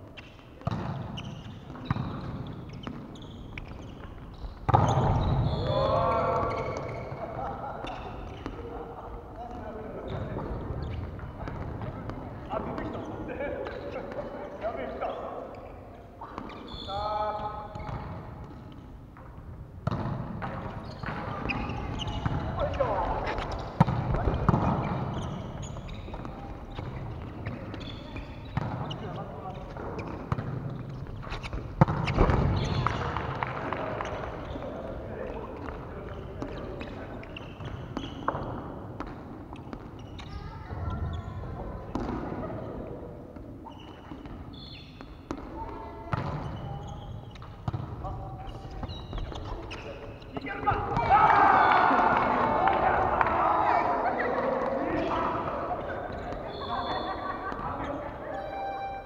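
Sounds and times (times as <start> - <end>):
players calling out: 49.7 - 59.0.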